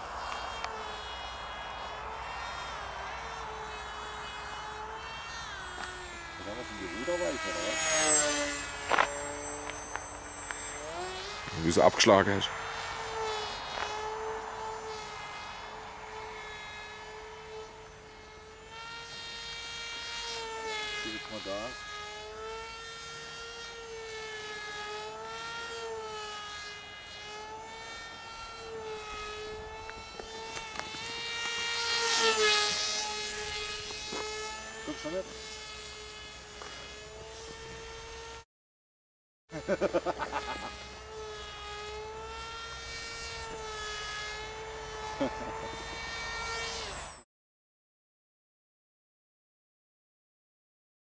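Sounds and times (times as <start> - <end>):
electric motor and propeller whine: 0.0 - 38.5, 39.5 - 47.3.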